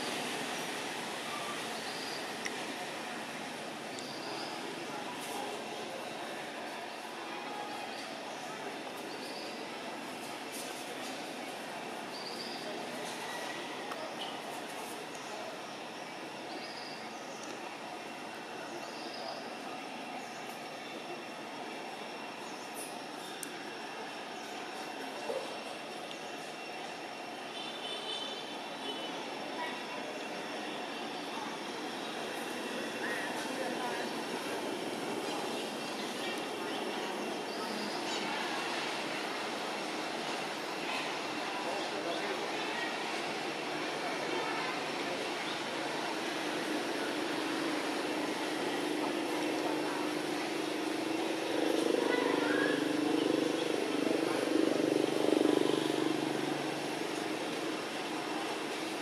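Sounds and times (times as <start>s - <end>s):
continuous hiss: 0.0s - 59.0s.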